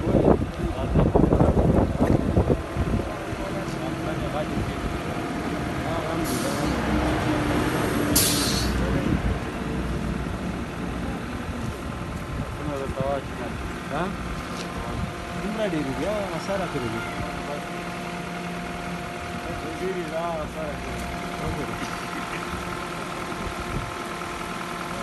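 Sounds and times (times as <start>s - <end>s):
vehicle engine running: 0.0s - 25.0s
voices: 0.0s - 25.0s
air hisses: 8.1s - 8.8s.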